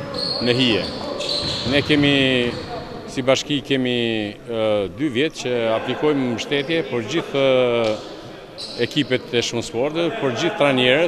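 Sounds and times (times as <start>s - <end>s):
basketball bouncing on court: 0.0s - 2.9s
man speaking: 0.4s - 1.0s, 1.7s - 8.0s, 8.8s - 11.0s.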